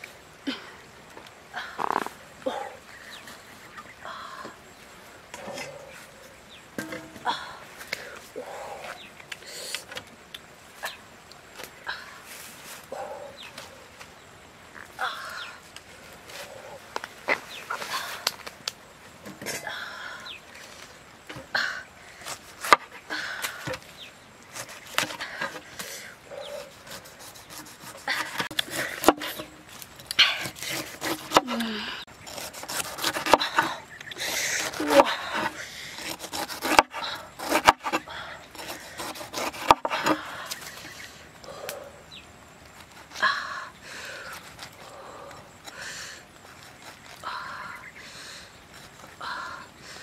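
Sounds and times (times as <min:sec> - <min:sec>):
knife rasping through fruit skin: 0:26.5 - 0:29.6, 0:30.2 - 0:33.7, 0:34.5 - 0:41.0.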